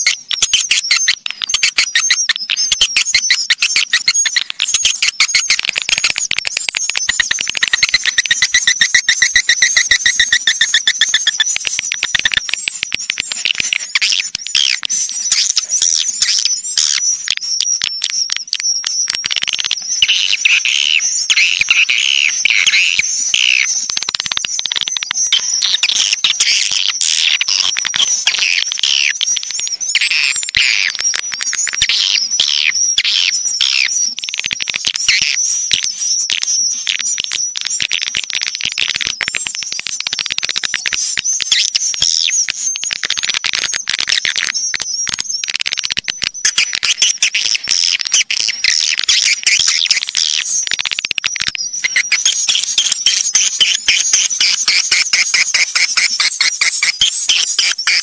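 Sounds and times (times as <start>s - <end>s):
swiftlet chirps and twitters: 0.0s - 58.0s.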